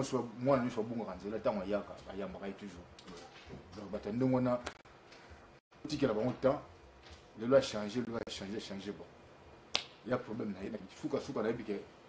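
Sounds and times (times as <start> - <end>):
man speaking: 0.0 - 4.7, 10.0 - 11.9.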